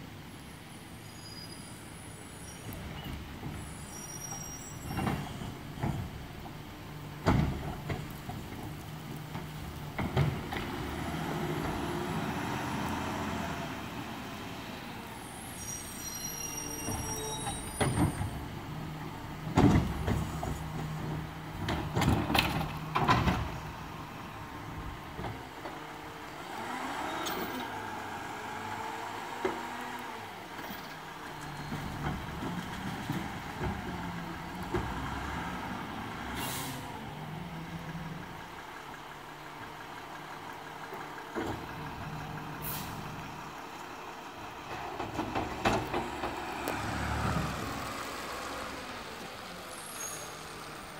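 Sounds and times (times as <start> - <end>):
garbage truck engine: 1.9 - 50.9
air brake hiss: 36.3 - 36.9, 42.6 - 43.1.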